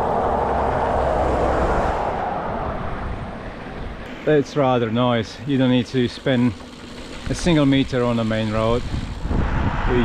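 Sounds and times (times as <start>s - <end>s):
vehicle driving past: 0.0s - 4.2s.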